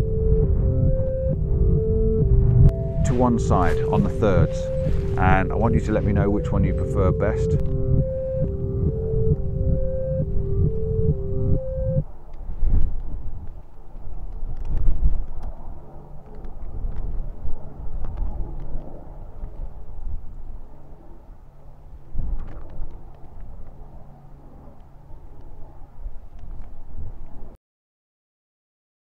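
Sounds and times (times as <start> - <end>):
wind buffeting microphone: 0.0 - 27.5
faint low hum: 0.0 - 27.6.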